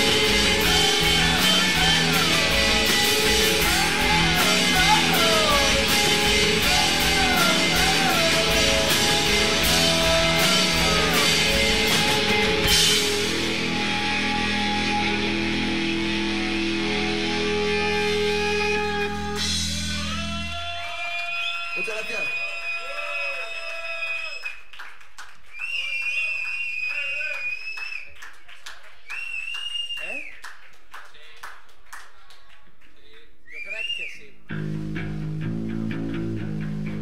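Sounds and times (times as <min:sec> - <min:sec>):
whining electric guitar tones: 0:00.0 - 0:20.5
rock band playing: 0:00.0 - 0:20.8, 0:34.5 - 0:37.0.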